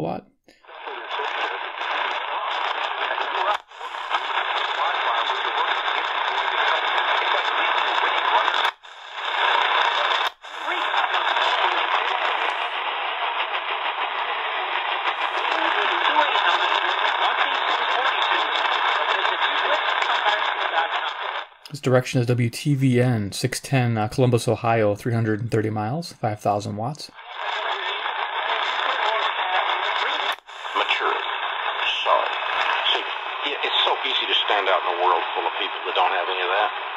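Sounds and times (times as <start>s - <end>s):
radio speech through small speaker: 0.0s - 36.9s.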